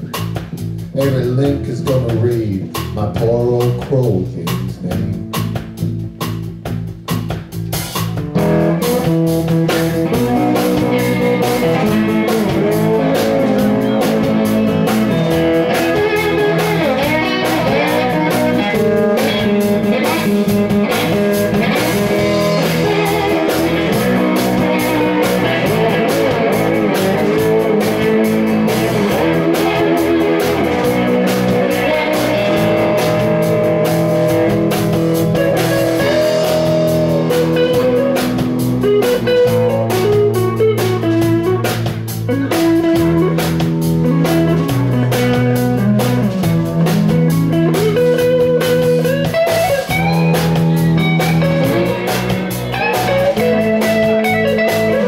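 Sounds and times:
drum kit: 0.0 - 55.0
electric bass: 0.0 - 55.0
electric guitar lead with bending notes: 0.0 - 55.0.

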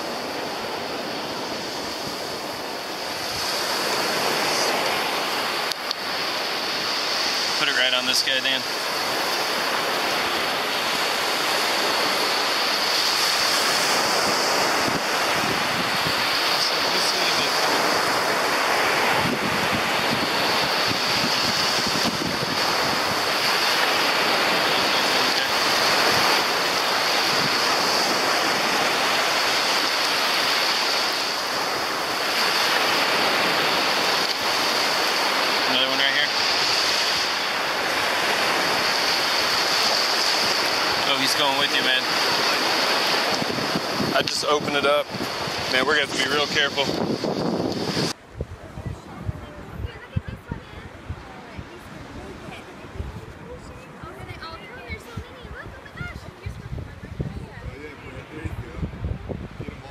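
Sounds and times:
surf washing onto beach: 0.0 - 59.9
wind on microphone: 0.0 - 59.9.

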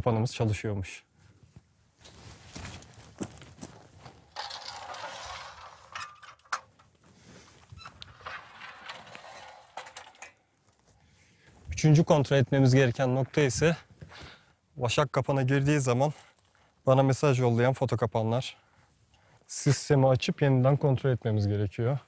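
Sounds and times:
scraping rustle: 2.0 - 11.0
metal trap clinking and rattling: 4.3 - 6.9, 8.0 - 10.5.

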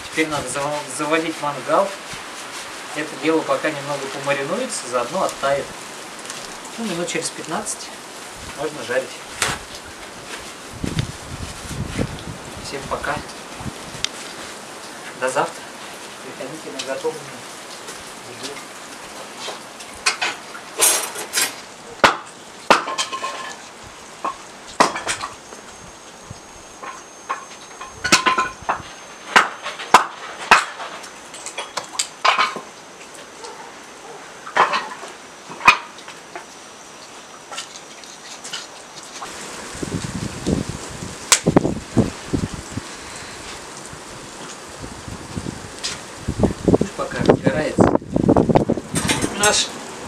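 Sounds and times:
firewood thudding into metal grill: 20.0 - 23.6, 24.3 - 25.3, 29.4 - 32.7.

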